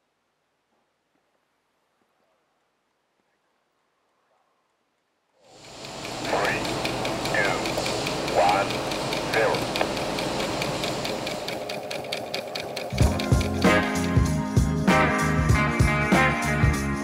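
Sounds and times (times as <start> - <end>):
mechanical rattling hum: 5.5 - 14.3
rock-funk music with bass and drums: 13.0 - 17.0.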